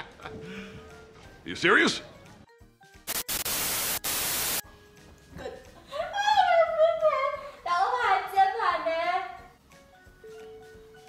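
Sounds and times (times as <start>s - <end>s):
tv static hiss: 3.1s - 4.6s.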